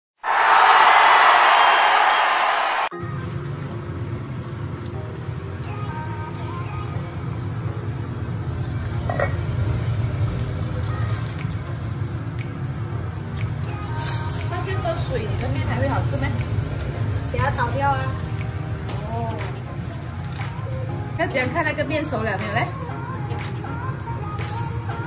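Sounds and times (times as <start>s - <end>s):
low kitchen hum: 3.0s - 21.7s.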